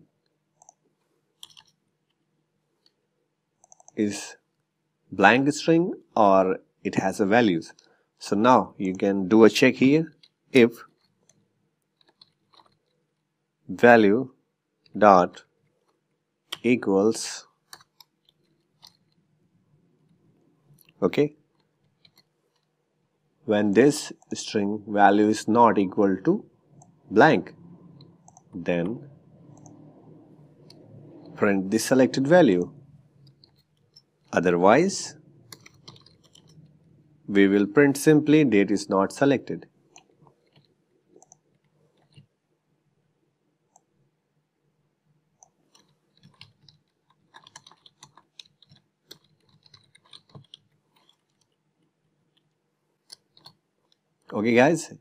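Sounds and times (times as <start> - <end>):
low steady hum: 0.0 - 55.0
person speaking: 3.9 - 4.5, 5.1 - 11.0, 13.6 - 15.5, 16.5 - 18.0, 20.8 - 21.5, 23.4 - 40.4, 54.2 - 55.0
keyboard keys clicking: 35.5 - 36.9, 45.7 - 51.6.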